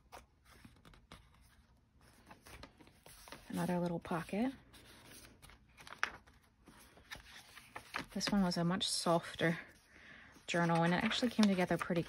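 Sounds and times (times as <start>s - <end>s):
paper pages rustling: 0.0s - 8.6s, 10.5s - 12.0s.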